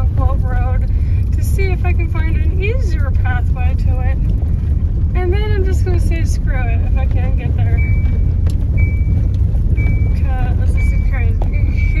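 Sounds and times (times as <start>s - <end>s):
car road and engine rumble: 0.0s - 12.0s
short high beeps: 7.7s - 12.0s.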